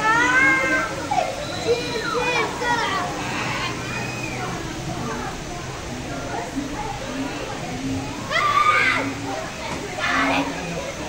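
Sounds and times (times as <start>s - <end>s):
children's excited voices: 0.0s - 11.0s.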